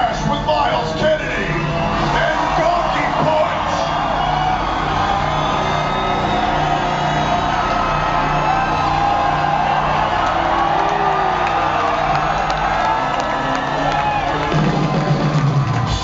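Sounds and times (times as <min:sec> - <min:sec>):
audience whooping and cheering: 0:00.0 - 0:16.0.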